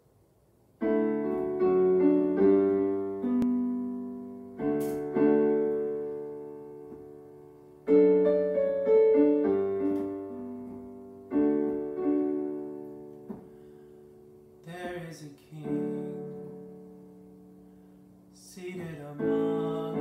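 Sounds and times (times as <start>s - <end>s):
digital piano chords: 0.8s - 20.0s.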